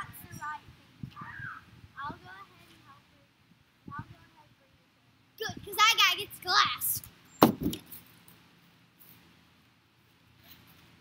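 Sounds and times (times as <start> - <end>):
sharp knock: 7.4 - 7.8.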